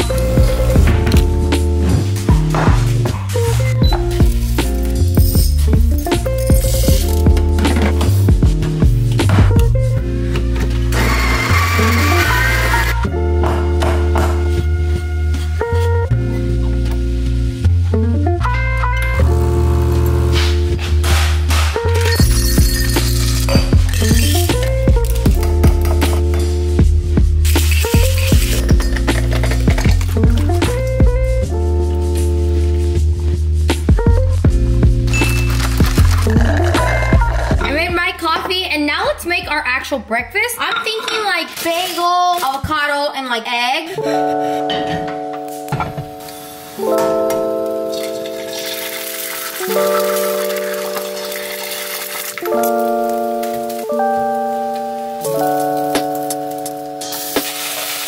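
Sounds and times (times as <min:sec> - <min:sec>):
background music with bass line: 0:00.0 - 0:39.5.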